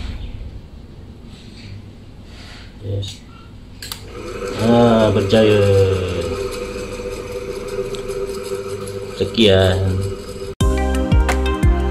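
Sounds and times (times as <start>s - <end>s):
fan motor electrical hum: 0.0s - 10.6s.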